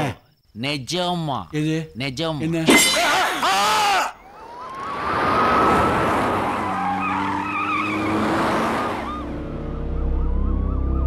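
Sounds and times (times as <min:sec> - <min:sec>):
police siren wailing: 0:04.2 - 0:11.0
passing vehicles: 0:04.3 - 0:11.0.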